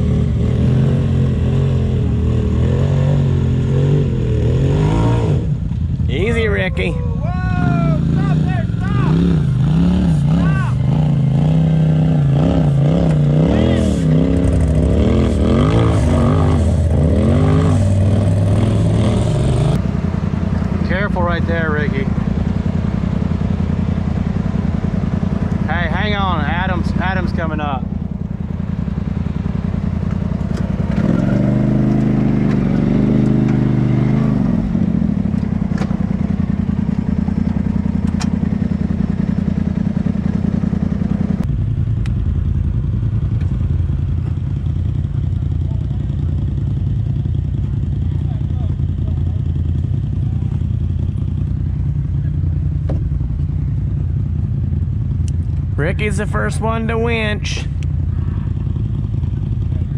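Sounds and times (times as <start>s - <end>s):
steady low drone: 0.0s - 59.9s
vehicle engine running at low speed: 0.0s - 59.9s.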